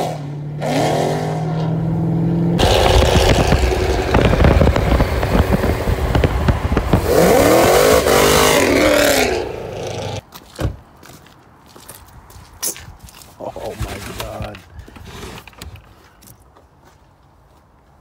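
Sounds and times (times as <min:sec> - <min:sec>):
car engine accelerating hard: 0:00.0 - 0:10.2.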